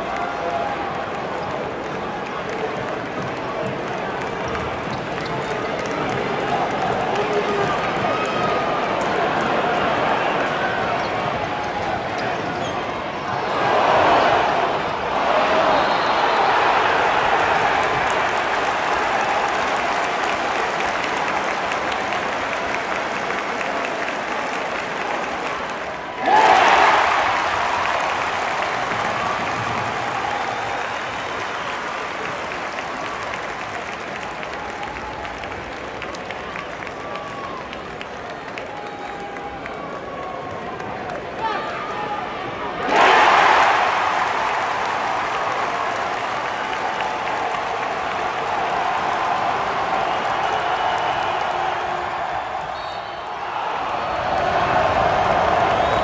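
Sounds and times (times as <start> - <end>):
crowd cheering and applauding: 0.0 - 56.0.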